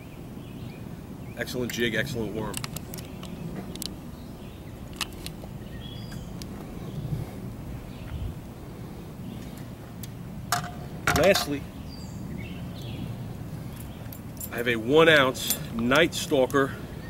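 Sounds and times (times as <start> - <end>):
fishing tackle clicking and knocking: 10.5 - 11.5.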